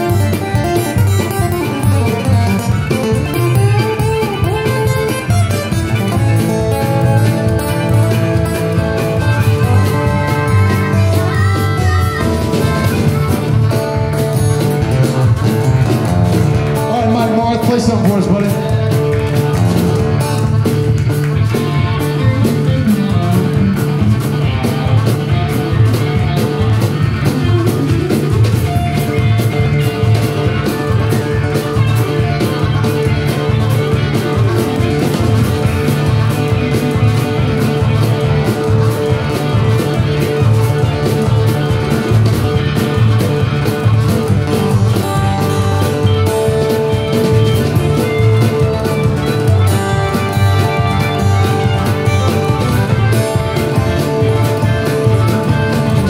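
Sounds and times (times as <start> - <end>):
acoustic guitar strumming: 0.0 - 56.0
upright bass: 0.0 - 56.0.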